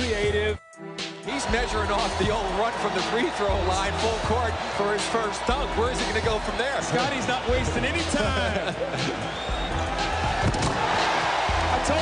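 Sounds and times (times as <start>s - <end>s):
arena crowd noise: 1.2s - 12.0s
music with repeating bass beat: 5.5s - 10.4s.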